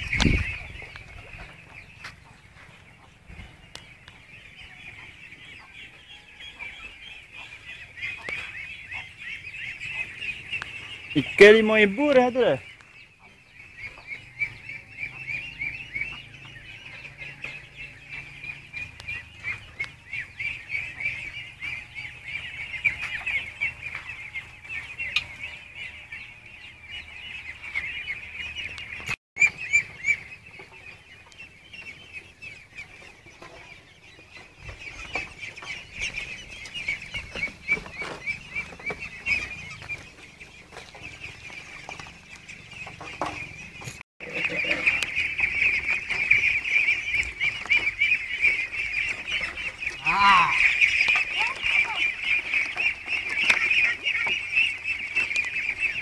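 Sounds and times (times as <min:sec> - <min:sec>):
poultry flock calling: 0:00.0 - 0:56.0.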